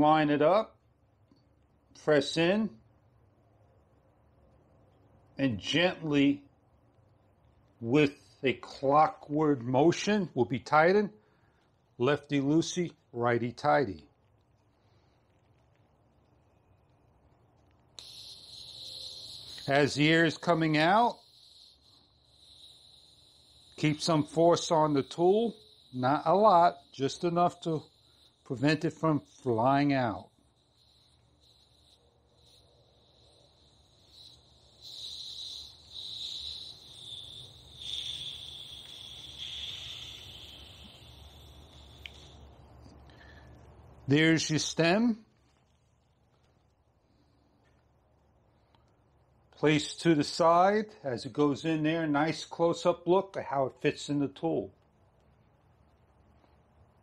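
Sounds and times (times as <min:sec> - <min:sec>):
air hissing from tire valve: 0:17.9 - 0:43.8.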